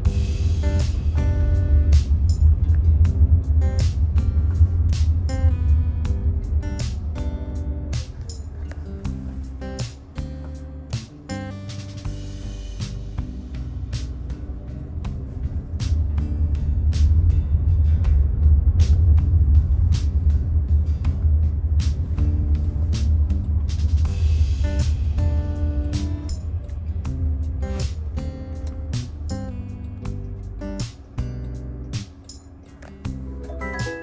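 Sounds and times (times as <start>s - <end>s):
car driving rumble: 0.0s - 33.6s
music with steady beat: 0.0s - 34.0s.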